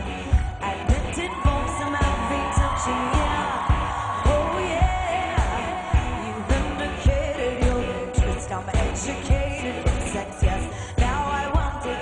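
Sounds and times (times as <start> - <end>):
electronic dance-pop music: 0.0 - 12.0
person singing melody: 0.0 - 12.0
steady kick drum: 0.9 - 11.8.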